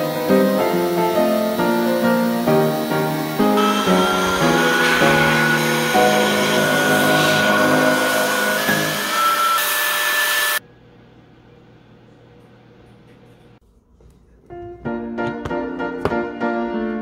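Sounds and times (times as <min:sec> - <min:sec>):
piano background music: 0:00.0 - 0:09.6, 0:14.5 - 0:17.0
electric air blower whining: 0:00.0 - 0:10.6.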